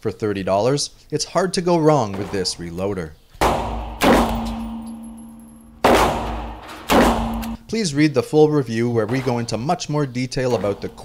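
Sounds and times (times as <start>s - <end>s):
revolver shots echoing indoors: 3.4s - 7.6s.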